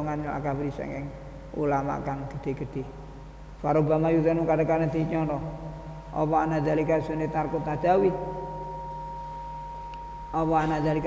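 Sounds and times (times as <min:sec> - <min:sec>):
low hum: 0:00.0 - 0:11.0
fainter lower tone: 0:04.8 - 0:11.0
high-pitched electronic tone: 0:04.8 - 0:11.0.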